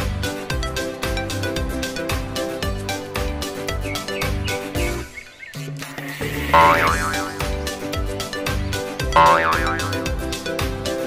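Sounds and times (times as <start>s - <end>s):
background music with steady beat: 0.0s - 11.0s
wavering high tone: 6.6s - 7.5s.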